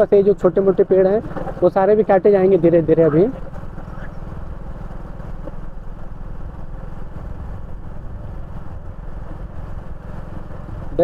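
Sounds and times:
motorcycle engine cruising: 0.0 - 11.0
road noise: 0.0 - 11.0.

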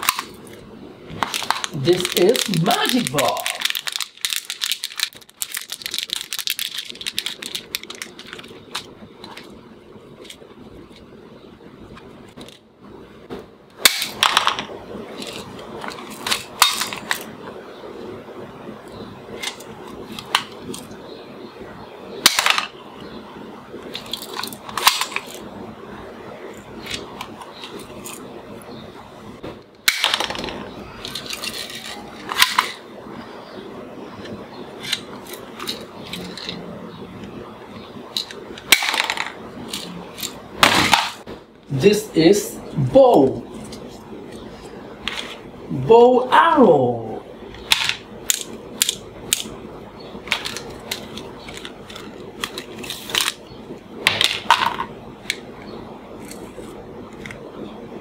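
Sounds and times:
plastic toys clattering on table: 29.9 - 32.8, 38.2 - 41.2, 50.3 - 53.4, 54.1 - 55.4.

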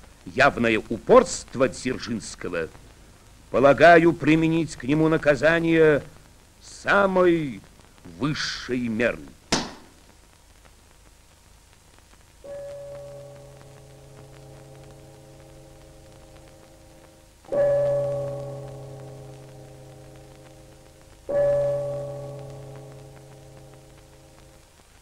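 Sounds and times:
large church bell tolling: 17.5 - 20.7, 21.3 - 23.9.

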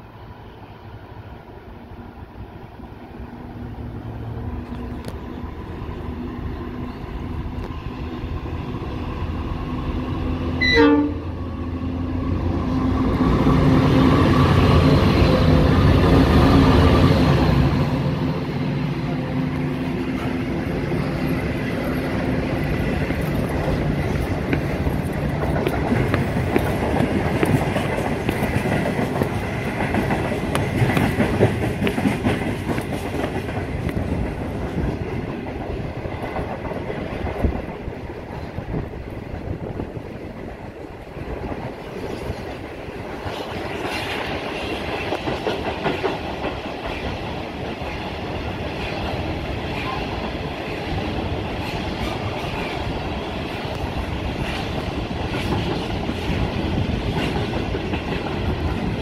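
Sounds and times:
freight train rolling past: 0.0 - 59.0.

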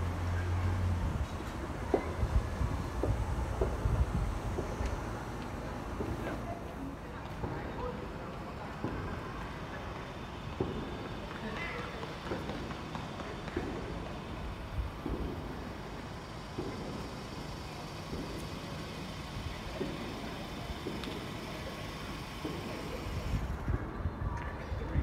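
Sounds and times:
low street noise rumble: 0.0 - 25.0.

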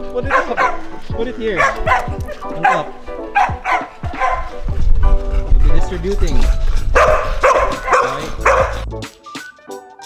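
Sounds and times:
background music: 0.0 - 10.0
dogs barking: 0.1 - 8.9.

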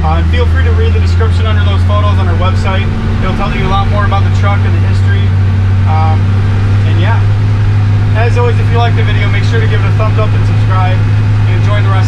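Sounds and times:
road noise: 0.0 - 12.0
truck engine droning: 0.0 - 12.0.

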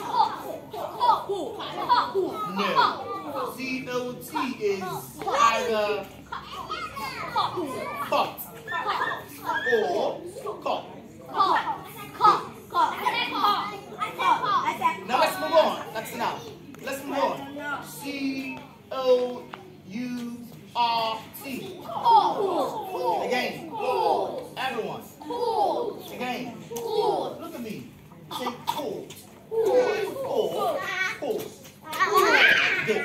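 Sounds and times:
children talking: 0.0 - 33.0.

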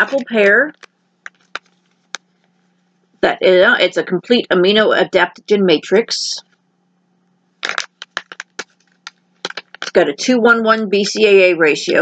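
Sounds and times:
plastic packets crinkling: 0.0 - 2.2, 7.6 - 10.0.

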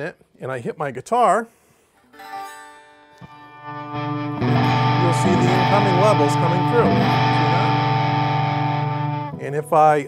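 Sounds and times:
overdriven electric guitar strumming: 3.2 - 10.0.

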